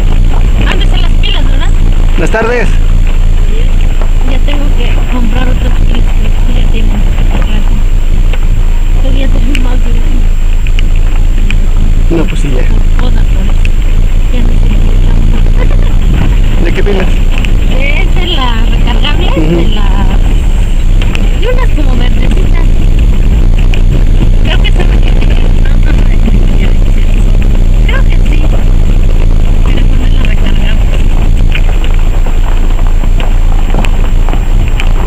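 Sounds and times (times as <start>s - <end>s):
vehicle engine and road rumble: 0.0s - 35.0s
voices talking: 0.0s - 35.0s.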